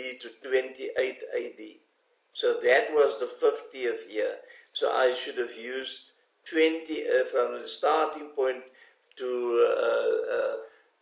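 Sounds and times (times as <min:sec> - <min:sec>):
man's drawn-out vocal sound: 0:09.4 - 0:10.7.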